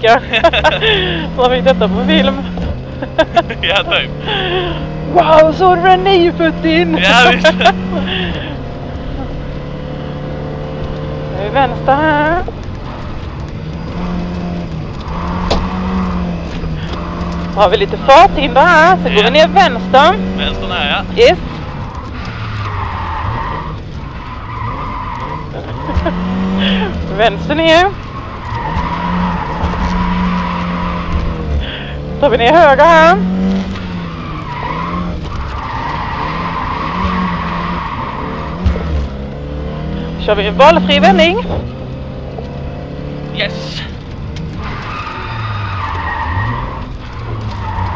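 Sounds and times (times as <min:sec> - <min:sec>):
car engine from inside cabin: 0:00.0 - 0:47.9
tyres squealing: 0:15.0 - 0:47.9.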